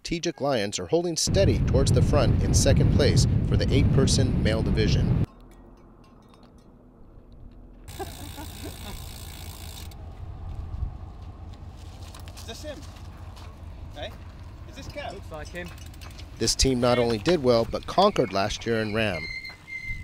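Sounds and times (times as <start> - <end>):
roadside rumble and hiss: 7.4 - 16.8.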